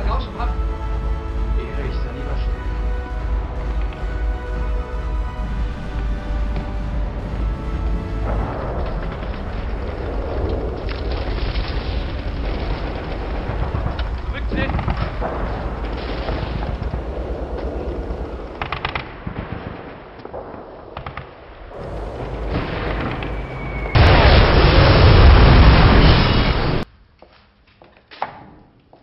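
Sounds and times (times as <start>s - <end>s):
artillery shell blasts: 7.5s - 26.9s
gunfire: 8.2s - 26.6s.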